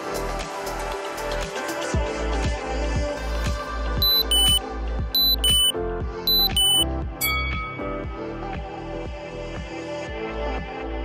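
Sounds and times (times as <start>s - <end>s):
music with steady beat: 4.0s - 4.6s, 5.2s - 5.7s, 6.3s - 8.8s
timer beeps: 4.0s - 4.6s, 5.2s - 5.7s, 6.3s - 7.8s.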